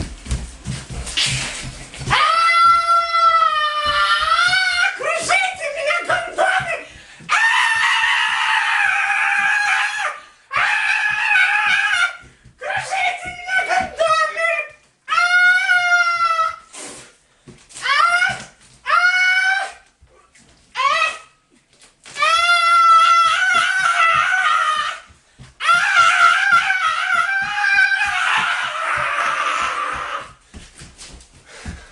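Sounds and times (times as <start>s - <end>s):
high-pitched vocal shrieking: 25.6s - 30.3s.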